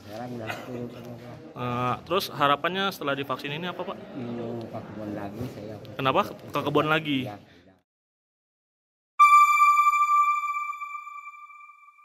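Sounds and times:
bright electronic chime: 9.2 - 12.0.

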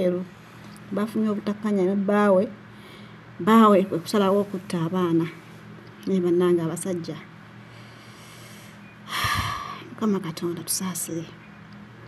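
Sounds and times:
person's loud breath: 7.8 - 9.8.

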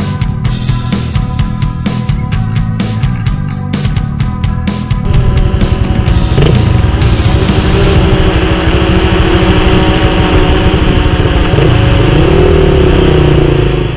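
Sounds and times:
dirt bike engine revving: 4.7 - 13.9.

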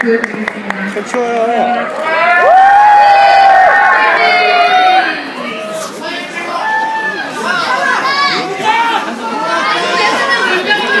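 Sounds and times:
crowd calling out and talking: 0.0 - 11.0.

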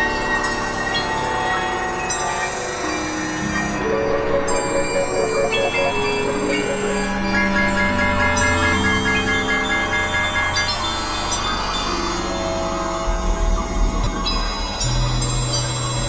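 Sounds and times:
sustained electronic drones: 2.5 - 16.0
pulsing electronic note: 3.7 - 10.9.

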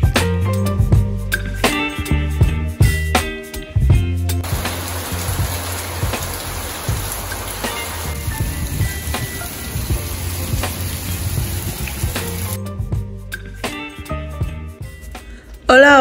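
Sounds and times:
background music with low beat: 0.0 - 15.7
heavy rain pouring: 4.4 - 12.6.

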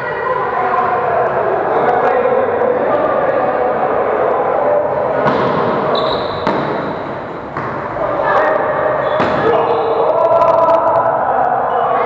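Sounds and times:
players calling out: 0.0 - 12.0
volleyball being hit: 5.2 - 8.0, 9.0 - 9.7.

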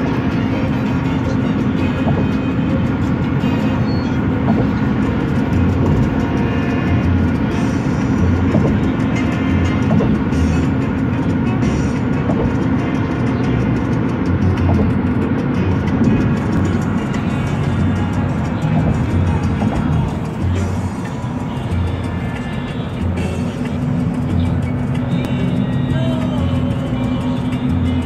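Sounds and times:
car road and engine noise: 0.0 - 28.0
music playing: 0.0 - 28.0.

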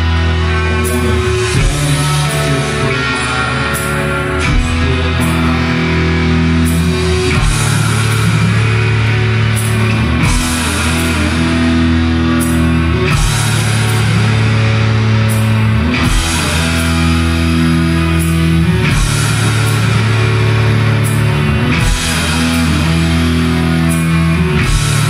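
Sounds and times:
bass: 0.0 - 25.0
drums: 0.0 - 25.0
guitar chords ringing: 0.0 - 25.0.

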